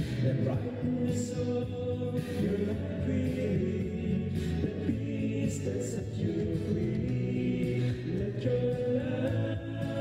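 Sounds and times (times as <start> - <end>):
voices singing a hymn slowly: 0.0 - 10.0.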